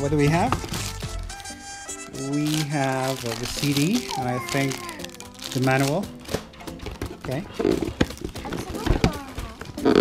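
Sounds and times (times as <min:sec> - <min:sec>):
cardboard box rustling and knocking: 0:06.3 - 0:09.8.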